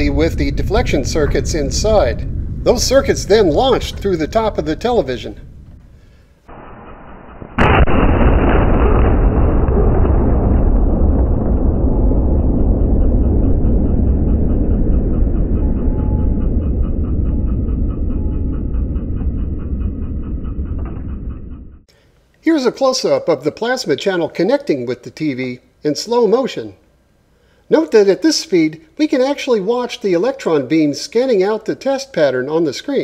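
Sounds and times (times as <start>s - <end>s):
low rumble: 0.0s - 21.9s
sharp loud bang: 6.5s - 14.5s.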